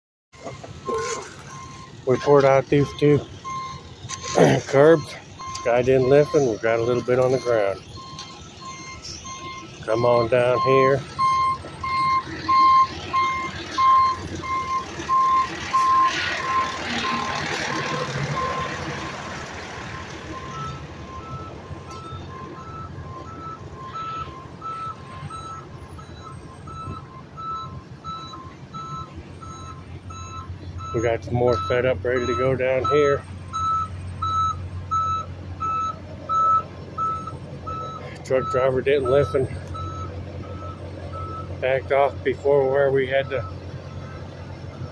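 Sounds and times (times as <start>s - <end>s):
truck reversing alarm beeping: 0.3s - 44.9s
higher-pitched backup alarm: 0.4s - 19.2s, 20.3s - 44.1s
low engine rumble: 0.4s - 44.9s.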